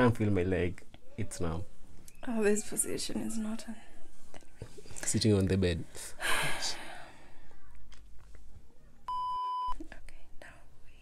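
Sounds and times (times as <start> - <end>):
high-pitched censor beep: 9.1 - 9.8.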